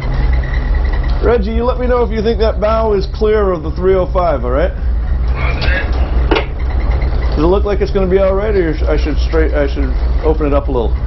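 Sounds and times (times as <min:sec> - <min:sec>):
diesel engines low drone: 0:00.0 - 0:11.0
faint voice: 0:05.3 - 0:06.0.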